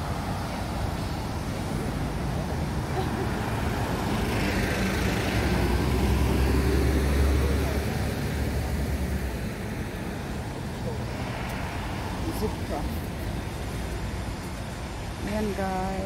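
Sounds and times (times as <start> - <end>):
bus engine rumble passing: 0.0 - 16.0.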